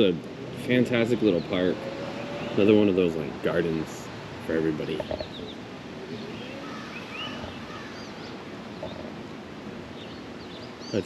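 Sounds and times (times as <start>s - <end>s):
outdoor background noise: 0.0s - 11.0s
bird chirps and twitters: 0.9s - 3.2s, 4.5s - 9.2s, 9.9s - 11.0s.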